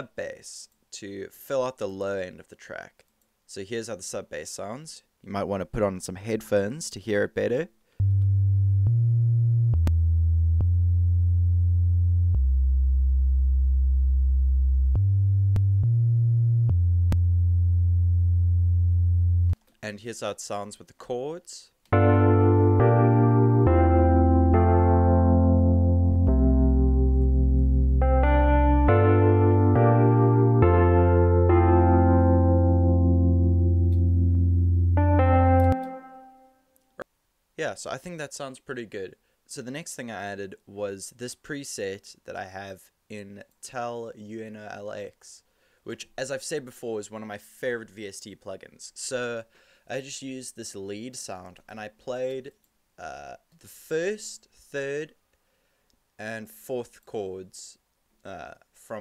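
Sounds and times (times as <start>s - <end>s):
deep sub-bass synthesizer tone: 8.0s - 19.6s, 22.0s - 35.7s
electric piano chords: 21.9s - 36.4s.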